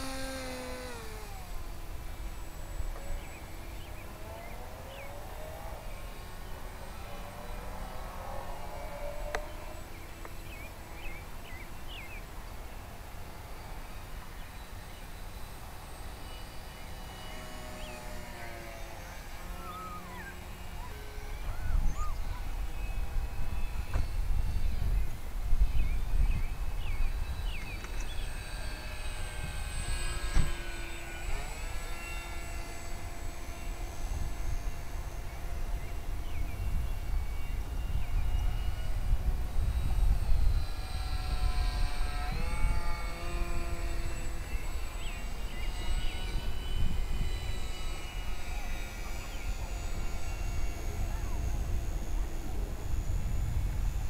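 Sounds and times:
model plane motor whining: 0.0s - 54.0s.

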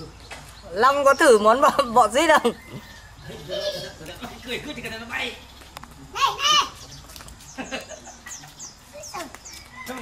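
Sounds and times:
faint distant voices: 0.0s - 10.0s.

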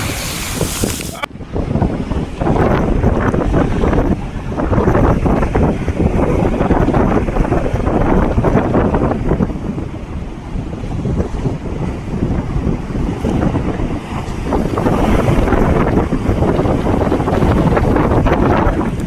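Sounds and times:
waves breaking against sea wall: 0.0s - 19.0s
wind buffeting microphone: 0.0s - 19.0s.

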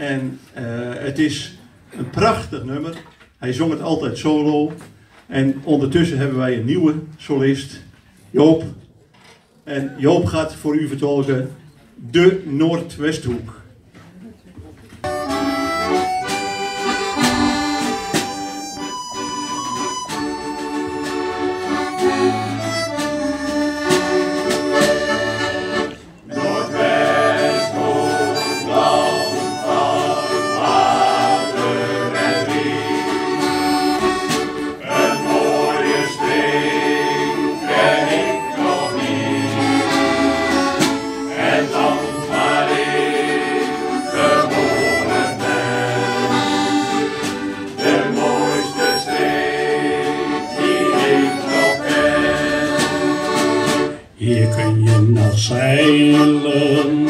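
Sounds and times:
accordion: 15.0s - 57.0s
harmonica: 15.0s - 57.0s.

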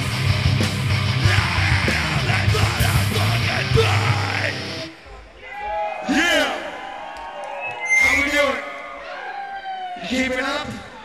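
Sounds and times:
live metal band: 0.0s - 5.0s
shouted vocals: 1.2s - 4.8s.

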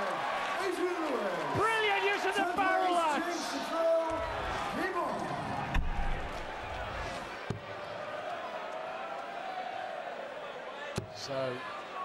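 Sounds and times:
murmur of arena crowd: 0.0s - 12.0s.

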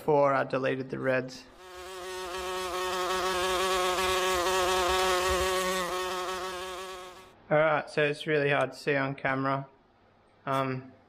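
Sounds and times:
electrical buzz: 1.5s - 7.4s.

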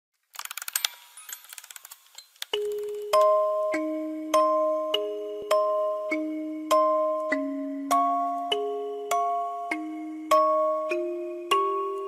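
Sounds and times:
mechanical ratchet clicks: 0.3s - 3.0s.

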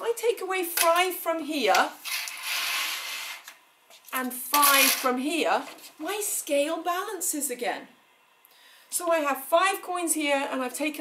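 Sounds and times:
coins scraping on scale pan: 2.1s - 3.4s.

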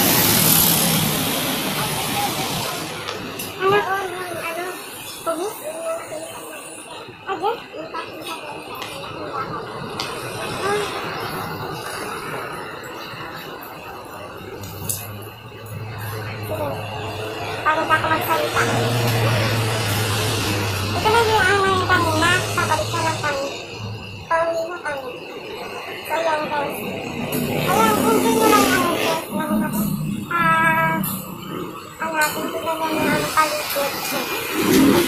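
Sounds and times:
traffic going by: 0.0s - 35.0s
voices: 0.0s - 35.0s.

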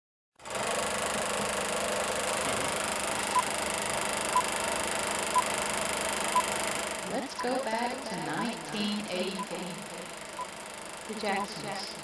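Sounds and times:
film projector whirring: 0.4s - 12.0s
short high beeps: 7.3s - 7.6s.

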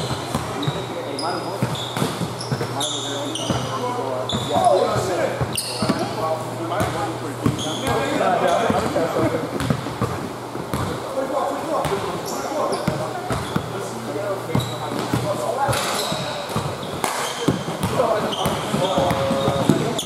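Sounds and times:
basketball bouncing on court: 0.0s - 0.9s, 1.6s - 2.8s, 3.4s - 6.1s, 9.6s - 11.0s, 12.8s - 13.7s, 14.5s - 20.0s
sneaker squeaks: 0.0s - 6.2s, 6.8s - 8.9s, 11.8s - 20.0s.

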